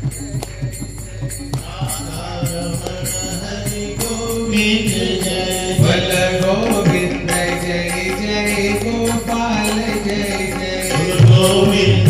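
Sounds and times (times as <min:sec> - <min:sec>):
repeated metallic strikes: 0:00.0 - 0:12.0.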